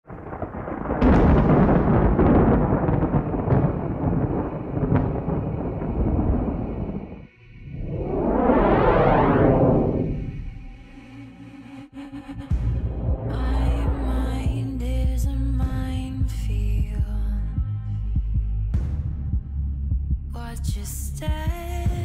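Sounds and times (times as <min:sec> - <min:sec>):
thunder-like rumbling: 0:00.1 - 0:10.4, 0:12.5 - 0:17.2
sharp booming hits: 0:00.8 - 0:06.9, 0:12.6 - 0:15.1
whoosh: 0:06.8 - 0:11.0, 0:12.0 - 0:15.1.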